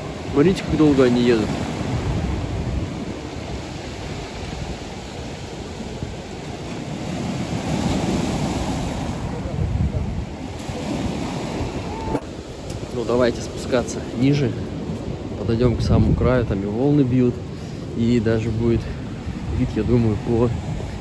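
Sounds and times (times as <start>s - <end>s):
waves breaking on stony beach: 0.0s - 21.0s
wind buffeting microphone: 0.0s - 21.0s.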